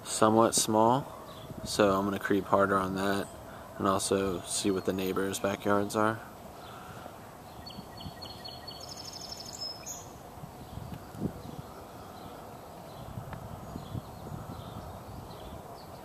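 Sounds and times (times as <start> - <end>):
low outdoor background: 0.0 - 16.0
bird chirping and trilling: 6.6 - 16.0.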